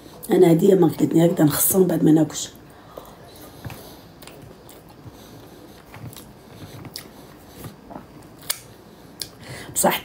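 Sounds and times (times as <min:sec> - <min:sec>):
person chewing food: 0:02.8 - 0:09.4.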